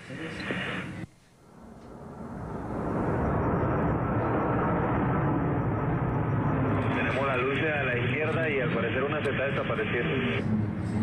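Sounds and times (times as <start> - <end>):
muffled radio communications: 0.0 - 1.1, 6.6 - 10.5.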